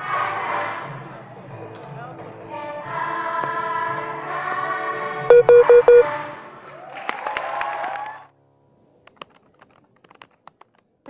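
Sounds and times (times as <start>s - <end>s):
audience cheering and clapping: 6.7s - 8.3s.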